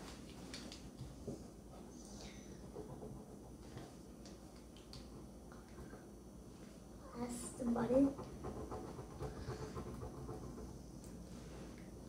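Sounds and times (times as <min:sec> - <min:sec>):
low room hum: 0:00.0 - 0:12.0
pencil scratching on paper: 0:02.6 - 0:04.0, 0:07.3 - 0:10.8.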